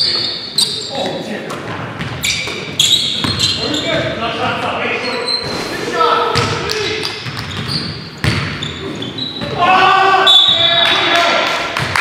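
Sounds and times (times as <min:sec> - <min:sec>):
players calling out: 0:02.2 - 0:11.6
basketball bouncing on hardwood: 0:03.2 - 0:03.5, 0:07.2 - 0:08.6.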